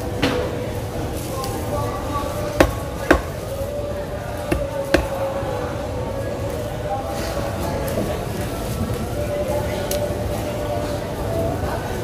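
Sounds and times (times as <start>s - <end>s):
machete chopping on wooden block: 2.6s - 3.4s, 4.5s - 5.2s.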